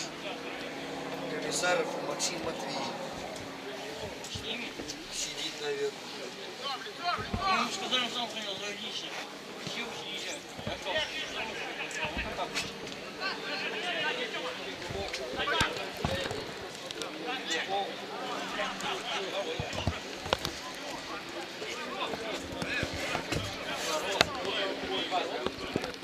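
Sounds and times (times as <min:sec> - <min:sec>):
players shouting: 0:06.5 - 0:25.6.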